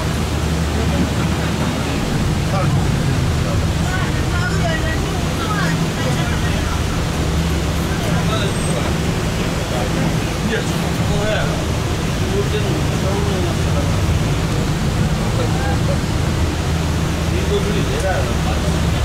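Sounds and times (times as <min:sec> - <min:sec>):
bus engine hum: 0:00.0 - 0:19.0
road and tyre noise: 0:00.0 - 0:19.0.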